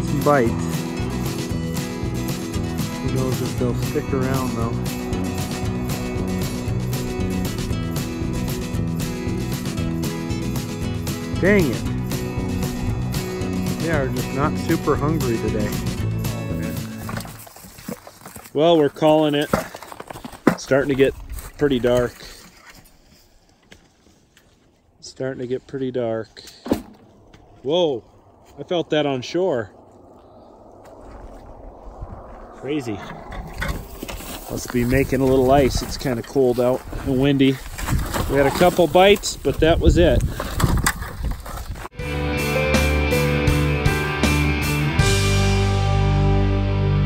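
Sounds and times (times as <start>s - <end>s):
steady drum beat: 0.0s - 17.0s
electric guitar: 42.0s - 47.0s.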